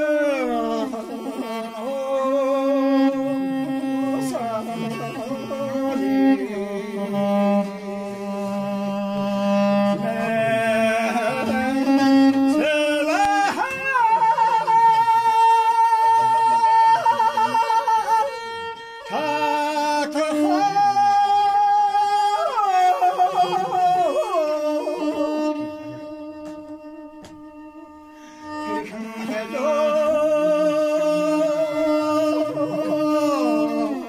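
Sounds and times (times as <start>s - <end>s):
man singing long held notes: 0.0s - 34.0s.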